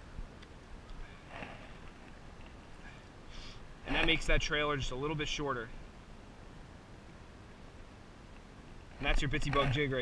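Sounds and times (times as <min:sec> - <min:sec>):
quiet outdoor background: 0:00.0 - 0:10.0
short breath: 0:02.8 - 0:03.7.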